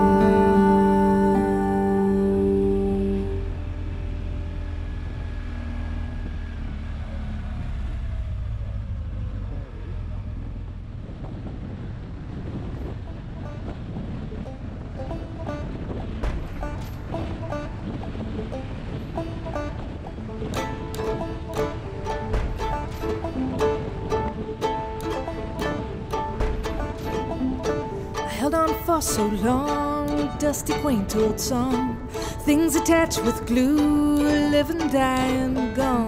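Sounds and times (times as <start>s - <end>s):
plucked-string music: 0.0s - 6.3s, 12.4s - 36.0s
motorcycle engine and road rumble: 0.0s - 36.0s
wind rushing over microphone: 8.0s - 34.2s.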